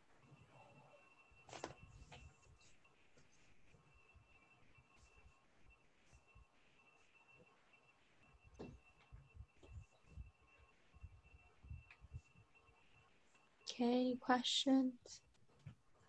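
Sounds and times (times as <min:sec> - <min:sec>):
thin steady hum: 0:00.0 - 0:16.0.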